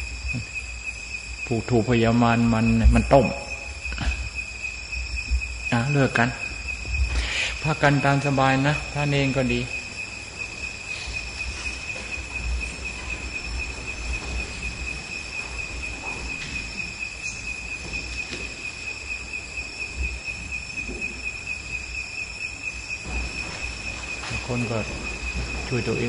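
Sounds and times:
high-pitched insect trill: 0.0 - 26.0.

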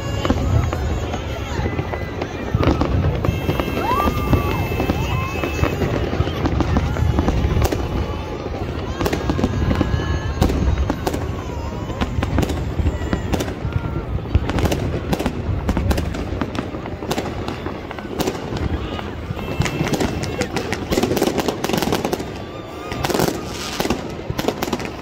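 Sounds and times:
fireworks bangs and crackles: 0.0 - 25.0.

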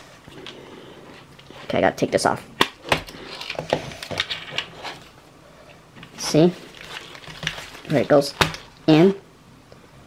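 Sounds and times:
plastic clicks and rubs: 6.0 - 8.8.

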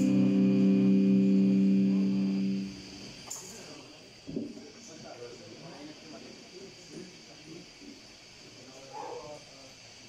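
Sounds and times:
metal band holding a chord: 0.0 - 3.2
room tone: 0.0 - 9.8.

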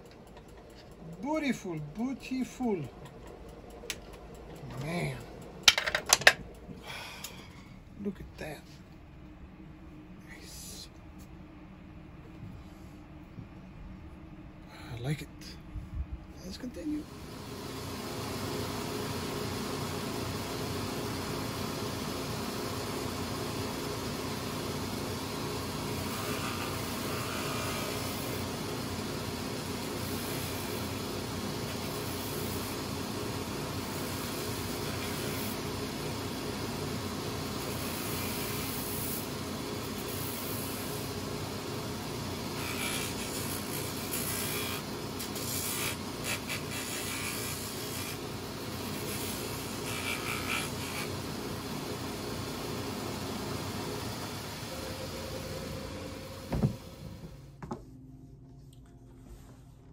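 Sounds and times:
machine motor hum: 0.0 - 10.2, 16.8 - 57.8
boot rubbing on spinning wheels: 42.4 - 51.2.

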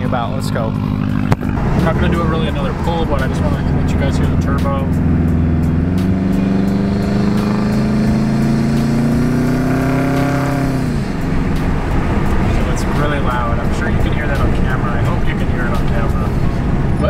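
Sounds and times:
car engine accelerating: 0.0 - 17.0.

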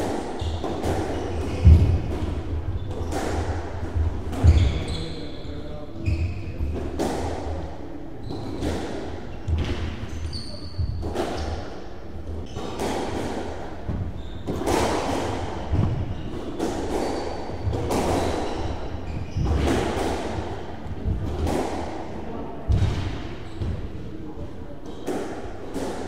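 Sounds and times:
squash ball struck by rackets: 0.0 - 4.8, 8.3 - 23.9, 24.8 - 26.0.

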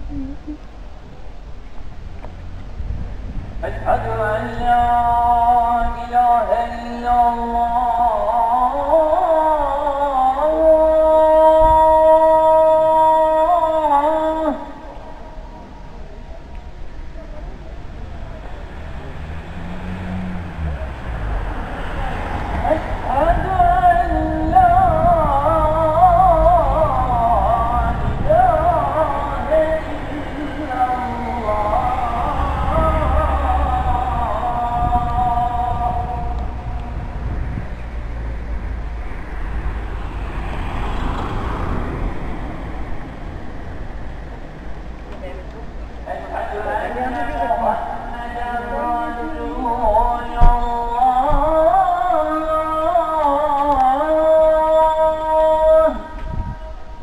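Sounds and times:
call to prayer singing: 0.0 - 0.6, 3.6 - 57.0
outdoor background noise: 0.0 - 57.0
street traffic rumble: 0.0 - 57.0
vehicle passing: 2.2 - 16.5, 17.4 - 57.0.

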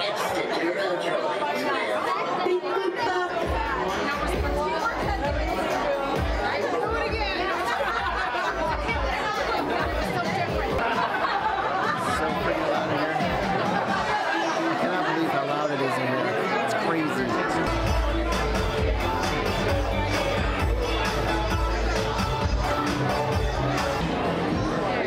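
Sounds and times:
crowd chattering: 0.0 - 25.0
music over speakers: 3.1 - 25.0.

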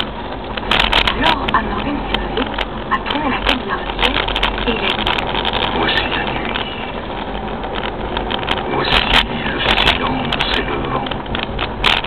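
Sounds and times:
road noise: 0.0 - 12.0
vehicle engine rumble: 0.0 - 12.0.

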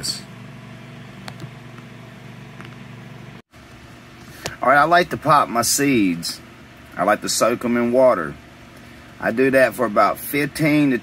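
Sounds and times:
ventilation fan humming: 0.0 - 11.0.

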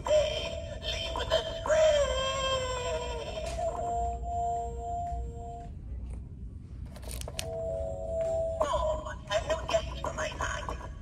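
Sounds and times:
electronically processed singing voice: 0.0 - 4.2, 8.6 - 11.0.

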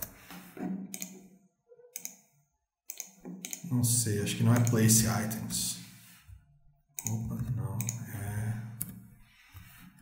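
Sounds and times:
keyboard and mouse clicks: 0.8 - 3.7, 4.5 - 5.0, 7.0 - 8.1.

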